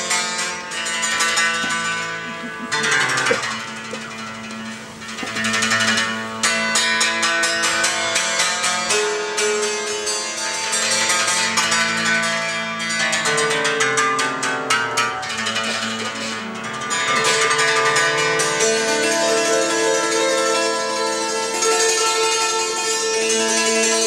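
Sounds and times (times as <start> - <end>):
hammered dulcimer ringing notes: 0.0 - 24.0.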